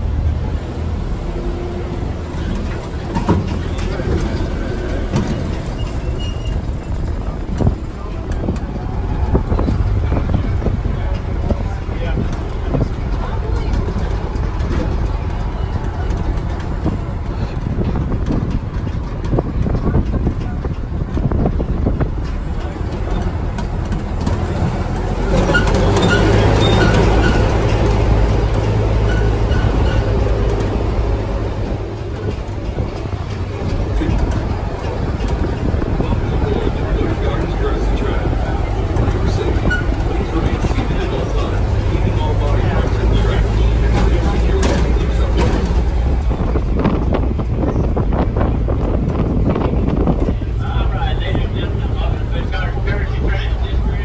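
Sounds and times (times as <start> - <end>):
indistinct voices: 0.0 - 54.0
tram engine and road drone: 0.0 - 54.0.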